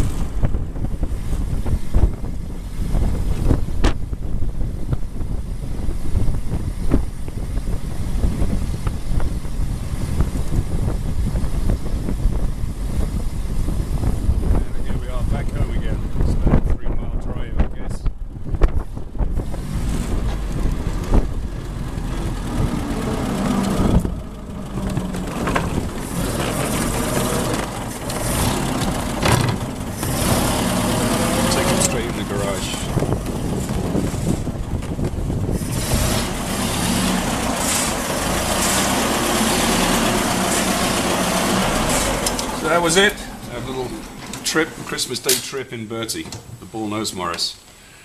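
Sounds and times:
old car engine running: 0.0s - 16.7s, 17.6s - 45.2s.

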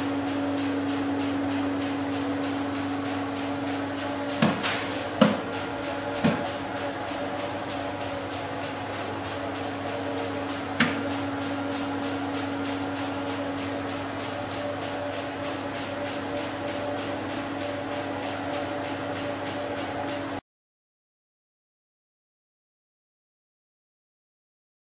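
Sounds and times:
electrical hum: 0.0s - 20.4s
sharp click: 3.6s - 5.4s.

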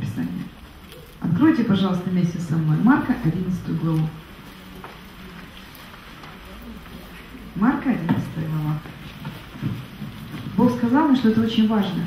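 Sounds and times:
low room noise: 0.0s - 12.0s
murmur of voices: 0.0s - 12.0s.

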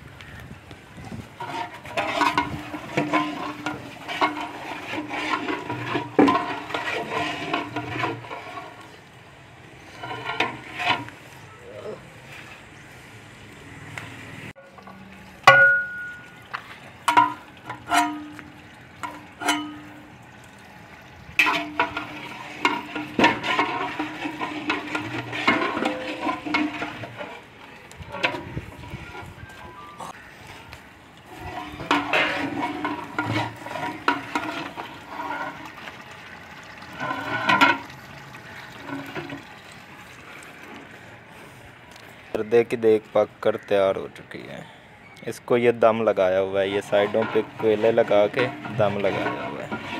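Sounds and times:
ladle scraping cooking pot: 1.2s - 11.4s, 17.0s - 20.2s, 21.3s - 39.6s, 46.2s - 49.9s
metal ladles clanking on pots: 1.2s - 11.5s, 14.6s - 41.5s, 46.0s - 49.9s.

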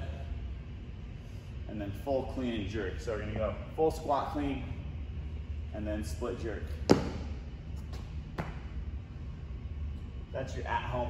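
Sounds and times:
low steady hum: 0.0s - 11.0s
sneakers tapping on rubber floor: 6.9s - 8.6s.

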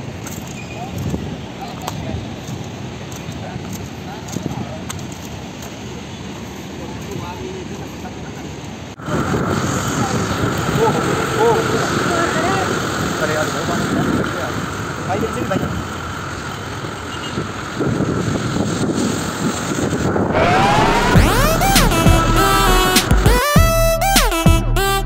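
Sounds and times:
wind rushing over microphone: 9.0s - 16.0s, 17.3s - 22.5s
electronic music: 20.3s - 25.0s.

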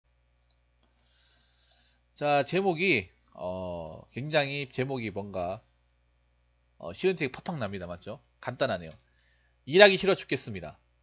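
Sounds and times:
steady low hum: 0.1s - 11.0s
faint clicks: 0.4s - 1.1s.

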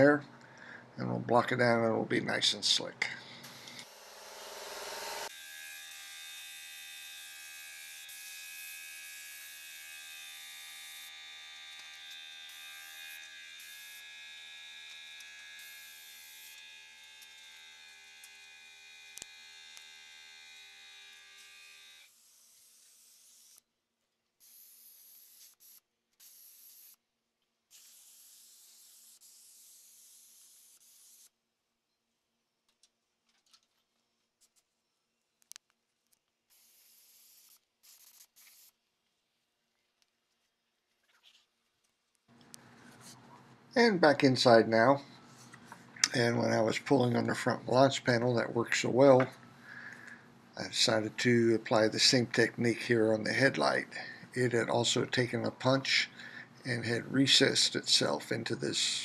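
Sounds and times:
spray gun hissing: 36.5s - 38.7s.

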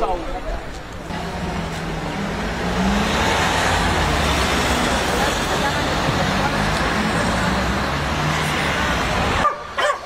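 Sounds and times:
car engine and tyre noise: 0.0s - 10.0s
vehicle passing close by: 1.1s - 9.8s.

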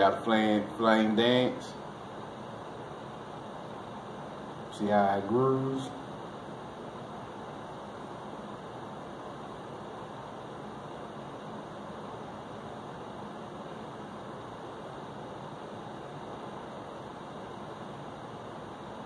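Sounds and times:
room noise hiss: 0.0s - 19.0s.

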